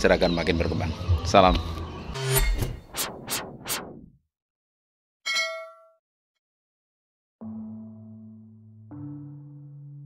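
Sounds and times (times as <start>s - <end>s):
bright metallic bell ding: 5.3s - 6.0s.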